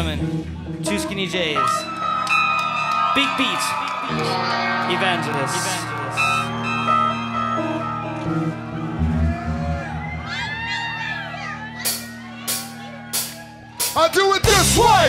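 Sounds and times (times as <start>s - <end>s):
rock band playing: 0.0s - 15.0s
bass notes: 4.2s - 15.0s.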